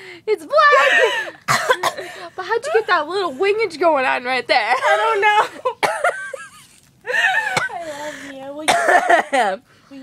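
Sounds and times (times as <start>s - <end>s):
woman coughing: 0.7s - 2.3s, 5.7s - 6.4s, 7.3s - 7.8s, 8.6s - 9.6s.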